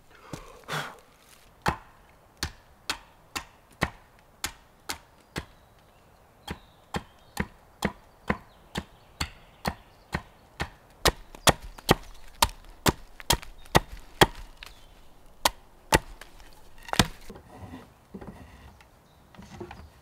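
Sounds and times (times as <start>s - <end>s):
wood being chopped: 1.6s - 5.6s, 6.5s - 17.3s.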